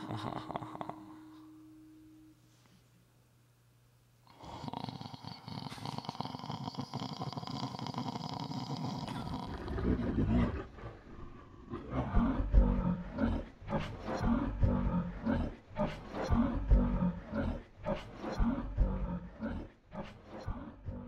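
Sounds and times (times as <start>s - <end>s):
deep rough roaring grunts: 8.2s - 21.0s.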